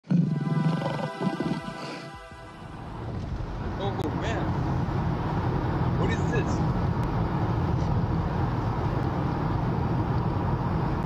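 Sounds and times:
intro music: 0:00.1 - 0:04.8.

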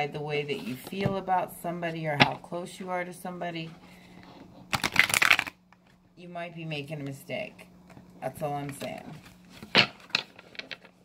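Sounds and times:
cards being shuffled: 0:04.6 - 0:05.9.

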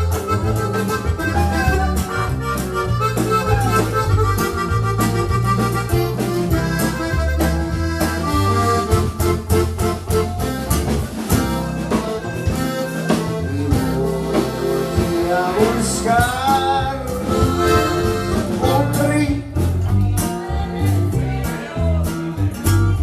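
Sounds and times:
accordion melody: 0:00.0 - 0:19.6
drums keeping a steady beat: 0:00.0 - 0:23.0
walking bass line: 0:00.0 - 0:23.0.

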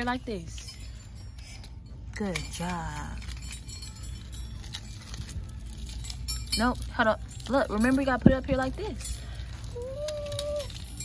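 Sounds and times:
metal chains jingling: 0:00.0 - 0:11.0.

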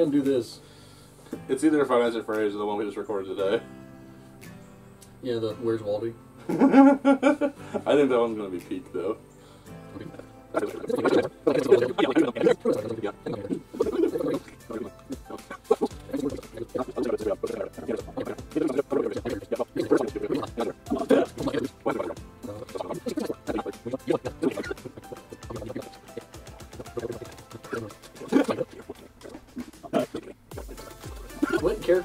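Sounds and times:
man laughing: 0:06.4 - 0:07.9, 0:15.2 - 0:25.7, 0:31.3 - 0:32.0
people laughing: 0:06.4 - 0:07.9, 0:31.4 - 0:32.0.

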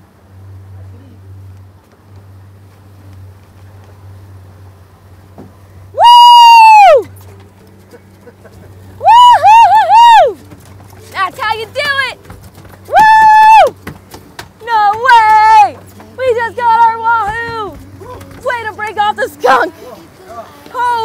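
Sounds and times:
person whooping excitedly: 0:06.0 - 0:07.1, 0:09.0 - 0:10.4, 0:12.9 - 0:13.8.

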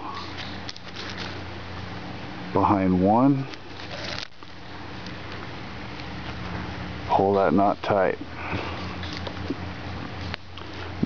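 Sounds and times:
cord rustling by hand: 0:00.0 - 0:01.4, 0:03.5 - 0:05.4.

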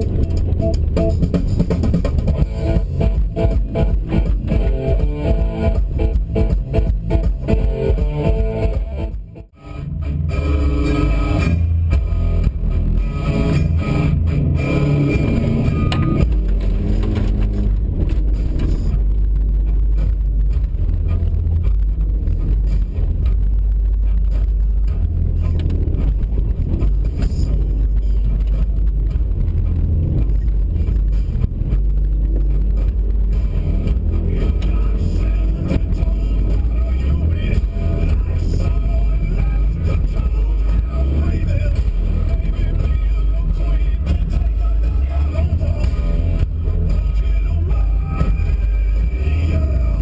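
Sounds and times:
background music: 0:00.0 - 0:50.0
car engine rumble: 0:00.0 - 0:50.0
road noise: 0:00.0 - 0:50.0.

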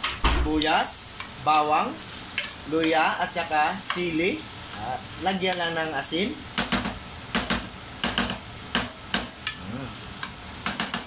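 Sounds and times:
meat sizzling: 0:00.0 - 0:11.0.

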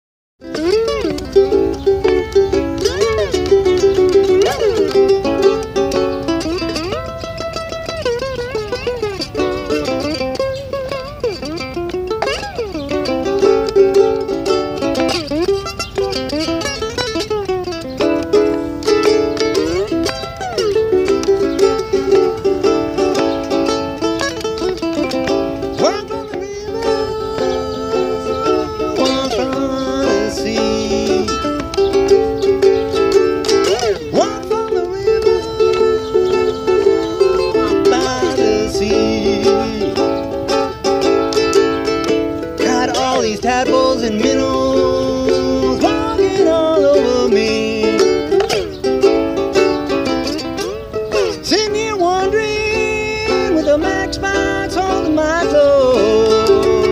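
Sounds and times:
slide ukulele playing blues: 0:00.4 - 0:56.9.

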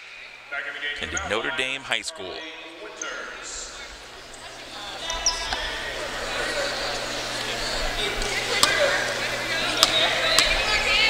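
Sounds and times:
murmur of crowd: 0:00.9 - 0:11.0.

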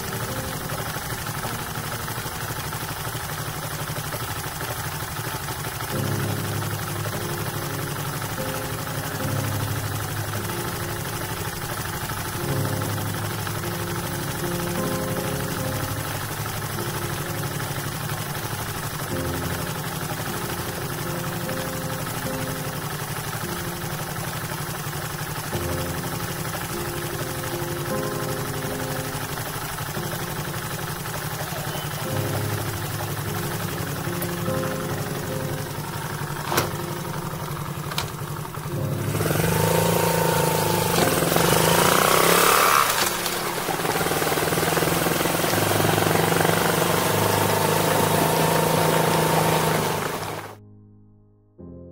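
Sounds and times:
motorcycle engine idling: 0:00.0 - 0:50.6
motorcycle riding off: 0:00.0 - 0:50.6.

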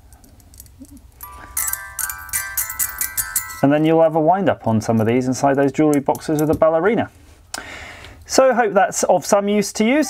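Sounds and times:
music box crank clicks: 0:01.2 - 0:03.7
music box tune: 0:01.2 - 0:04.2.

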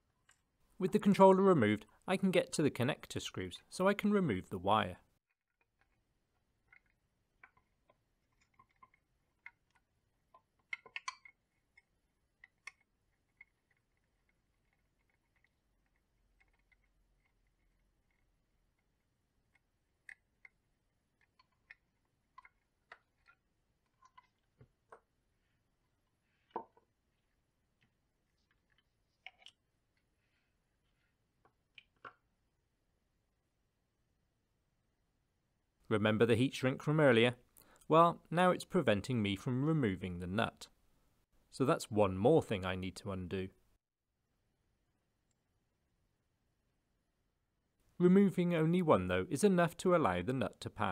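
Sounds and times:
small clicks and taps: 0:06.6 - 0:18.2.

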